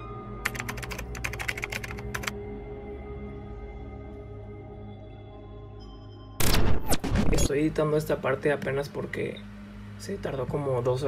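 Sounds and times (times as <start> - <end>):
ambient music drone: 0.0 - 6.7, 7.5 - 11.0
keyboard typing clicks: 0.4 - 2.3.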